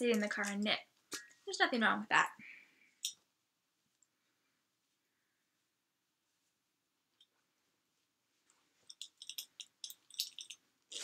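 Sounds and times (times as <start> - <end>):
small objects clicking and rattling: 8.8 - 11.0.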